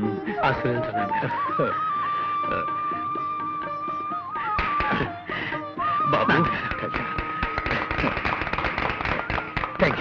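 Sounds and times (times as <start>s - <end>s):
small group clapping: 6.6s - 10.0s.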